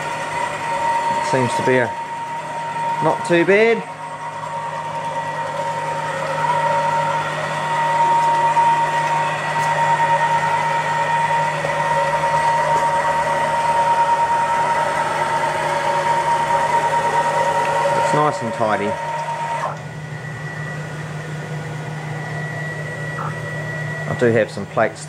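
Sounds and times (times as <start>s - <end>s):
stepper motors whining: 0.0s - 25.0s.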